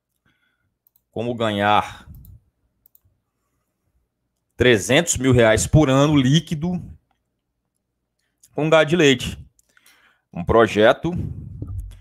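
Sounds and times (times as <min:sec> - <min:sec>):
person speaking: 0:01.0 - 0:02.5, 0:04.6 - 0:07.0, 0:08.5 - 0:09.6
faint sharp clicks: 0:02.1 - 0:03.0.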